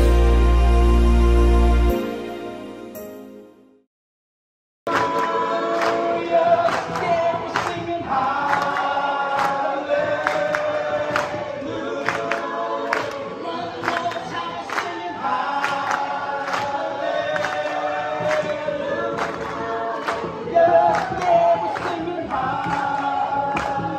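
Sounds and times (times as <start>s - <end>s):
group singing worship song: 4.9s - 23.9s
hand claps: 4.9s - 23.9s.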